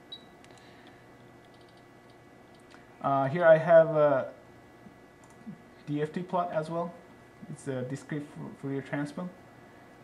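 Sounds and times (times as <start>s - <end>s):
faint ticks and clicks of controls: 0.2s - 2.9s, 4.8s - 5.9s.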